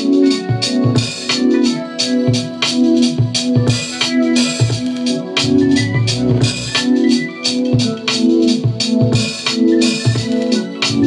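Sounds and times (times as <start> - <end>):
drum beat with low kicks: 0.0 - 11.0
organ-like keyboard chords: 0.0 - 11.0.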